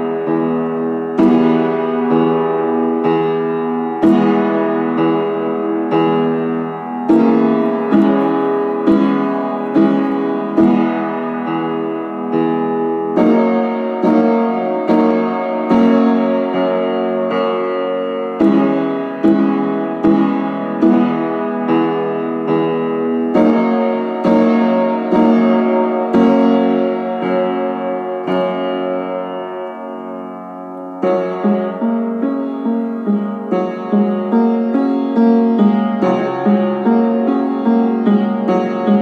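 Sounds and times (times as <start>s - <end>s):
slow piano notes: 0.0s - 39.0s.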